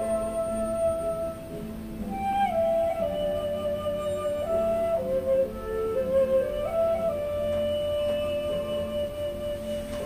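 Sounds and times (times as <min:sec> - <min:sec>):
flute holding long note: 0:00.0 - 0:10.0
soft low accompaniment: 0:00.0 - 0:10.0.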